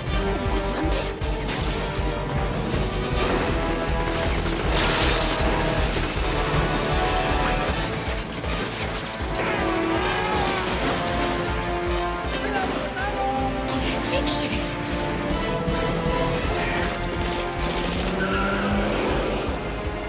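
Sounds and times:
action film music score: 0.0s - 20.0s
crashing and smashing effects: 1.4s - 13.2s.

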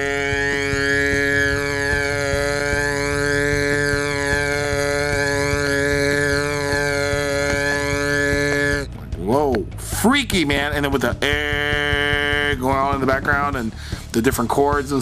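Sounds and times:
man singing a long note: 0.0s - 9.0s.

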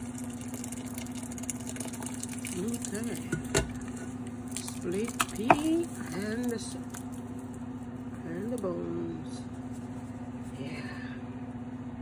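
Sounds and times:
wet food squishing into pot: 0.0s - 7.6s
steady low hum: 0.0s - 12.0s.

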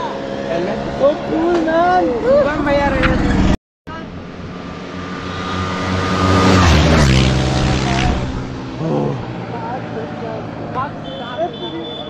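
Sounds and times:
motorcycle passing at speed: 0.0s - 11.0s.

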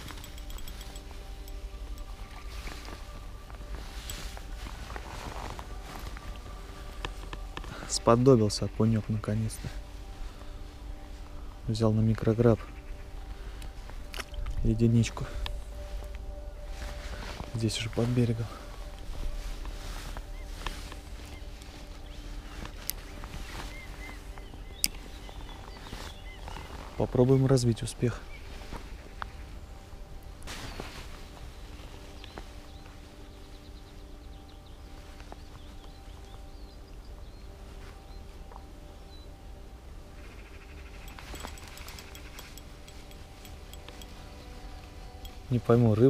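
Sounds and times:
low rumble: 9.8s - 27.0s
wind rumbling on microphone: 12.7s - 45.5s
faint bird chirps: 15.2s - 46.0s.

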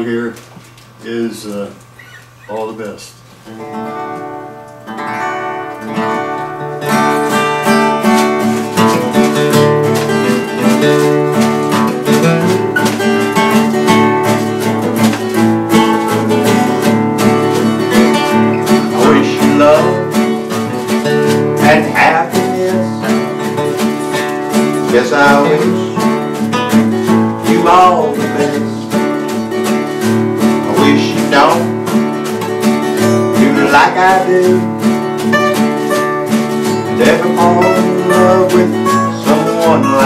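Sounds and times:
acoustic guitars playing: 0.0s - 40.0s.

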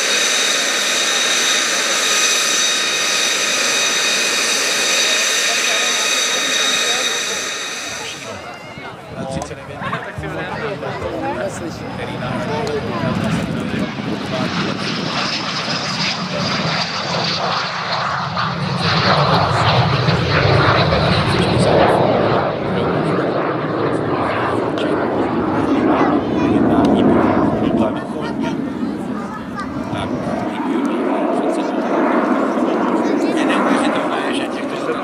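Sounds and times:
jet engine whine in flight: 0.0s - 35.0s.

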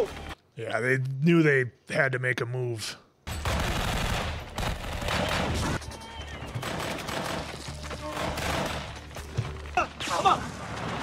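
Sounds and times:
heavy gunfire: 3.4s - 5.8s.

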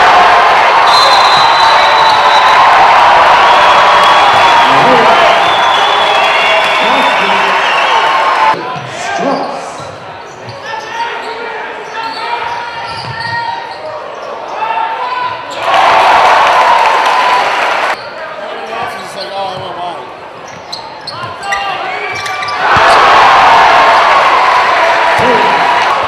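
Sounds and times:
players and spectators talking: 0.0s - 16.2s, 17.6s - 26.0s
loud crowd noise: 0.0s - 26.0s.

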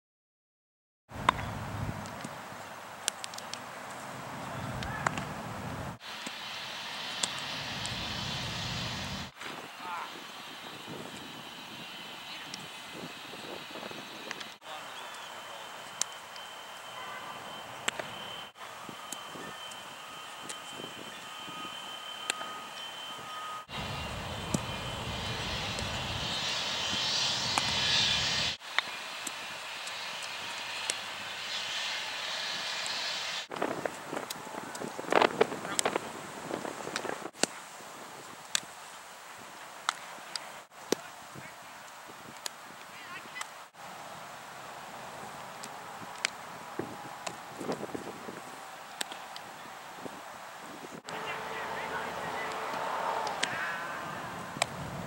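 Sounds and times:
steady outdoor rushing noise: 1.1s - 37.4s, 43.0s - 55.0s
steady low rumble: 7.2s - 9.3s, 23.7s - 28.6s
faint voices: 14.6s - 16.2s, 51.0s - 54.6s.

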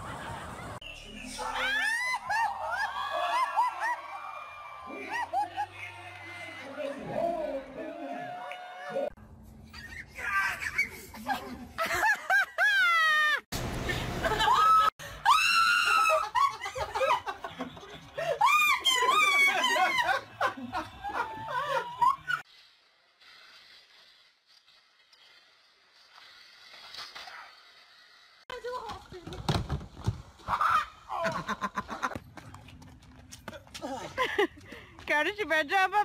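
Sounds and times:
woman shrieking and laughing: 1.4s - 6.0s, 9.7s - 13.5s, 14.2s - 17.3s, 18.2s - 22.4s, 30.5s - 32.1s.

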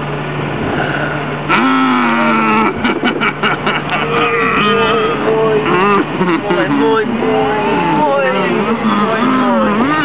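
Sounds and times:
low engine hum: 0.0s - 10.0s
loud moo-like voice call: 3.9s - 5.9s.

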